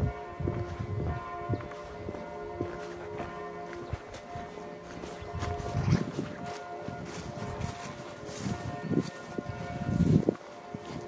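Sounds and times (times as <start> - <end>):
church bells ringing: 0.0 - 11.0.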